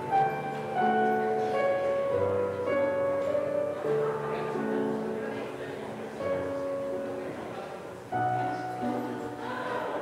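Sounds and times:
slow solo piano: 0.0s - 10.0s.

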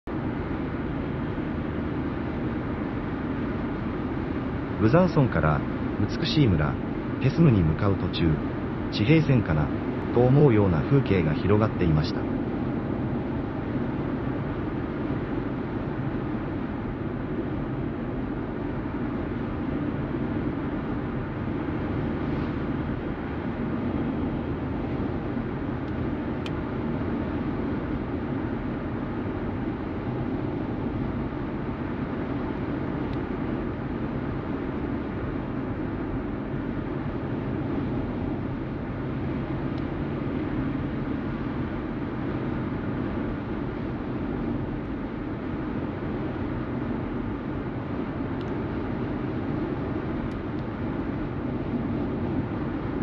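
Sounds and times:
car tyre and engine rumble: 12.1s - 53.0s.

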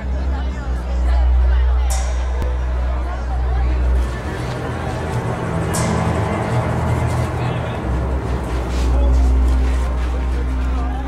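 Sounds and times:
deep steady low hum: 0.0s - 11.0s
muffled indistinct voices: 0.0s - 11.0s.

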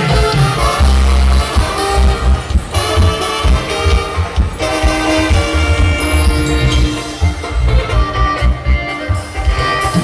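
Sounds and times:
live band dance music: 0.0s - 10.0s.

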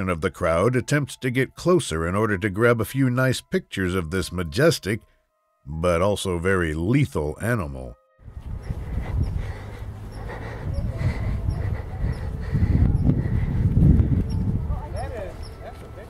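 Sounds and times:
wind rumble on microphone: 8.2s - 16.0s
faint voices: 9.7s - 16.0s.

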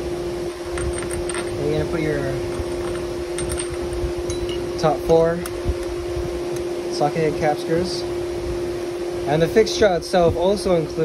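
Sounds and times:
steady low hum: 0.0s - 11.0s
light metal clinks: 0.7s - 4.9s.

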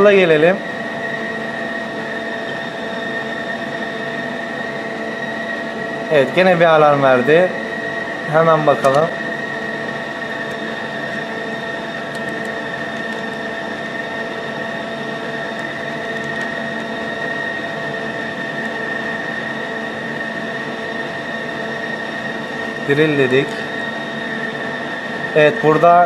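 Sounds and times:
lathe humming with high whine: 0.0s - 26.0s.

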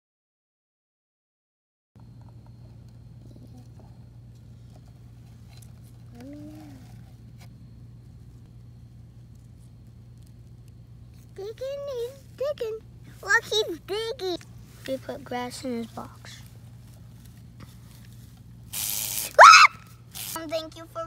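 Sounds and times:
faint low hum: 2.0s - 21.0s
rustling and crackle: 2.2s - 18.7s.

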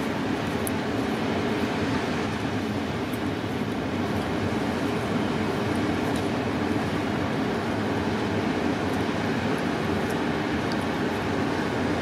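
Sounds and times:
ocean surf roaring: 0.0s - 12.0s
wind: 0.0s - 12.0s.

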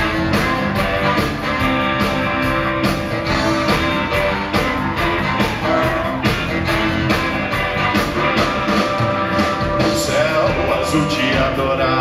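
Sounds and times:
drums steady beat: 0.0s - 12.0s
live band playing: 0.0s - 12.0s.

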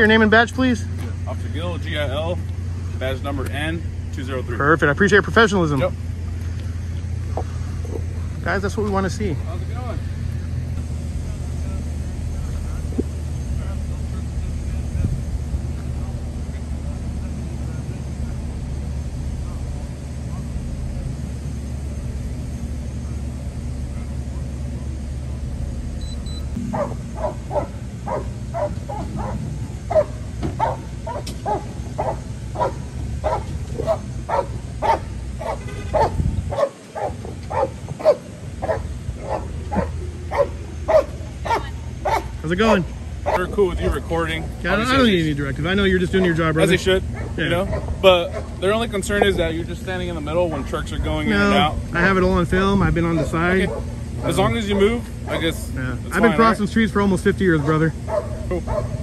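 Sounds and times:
low steady rumble: 0.0s - 59.0s
dog barking: 26.7s - 42.4s, 43.2s - 43.5s, 47.1s - 49.4s, 53.1s - 55.1s, 58.0s - 59.0s.

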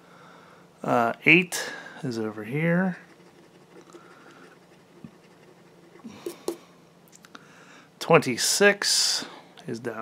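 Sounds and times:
coin scraping scratch card: 3.0s - 6.6s.

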